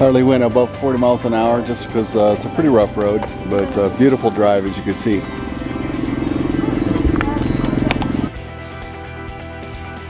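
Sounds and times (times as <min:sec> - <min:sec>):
background music: 0:00.0 - 0:10.0
motorcycle engine idling: 0:03.4 - 0:08.3.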